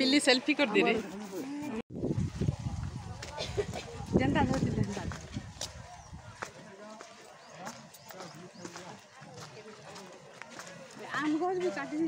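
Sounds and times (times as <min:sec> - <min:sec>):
wind on microphone: 0:01.9 - 0:06.4
people chatting: 0:02.8 - 0:12.0.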